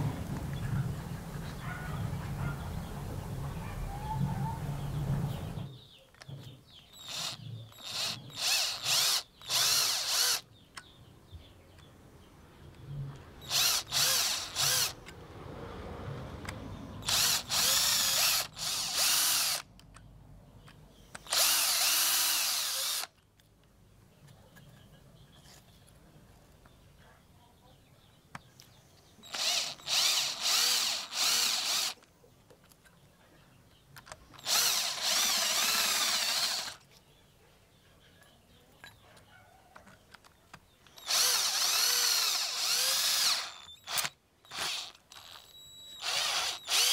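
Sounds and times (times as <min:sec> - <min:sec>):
power drill spinning: 0:07.0 - 0:10.4, 0:13.4 - 0:15.1, 0:17.0 - 0:19.7, 0:21.2 - 0:23.2, 0:29.2 - 0:32.0, 0:34.4 - 0:36.8, 0:40.9 - 0:46.9.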